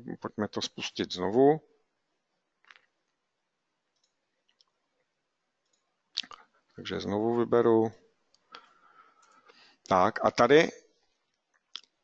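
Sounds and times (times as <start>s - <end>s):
man speaking: 0.0s - 1.6s, 6.2s - 8.0s, 9.9s - 10.8s.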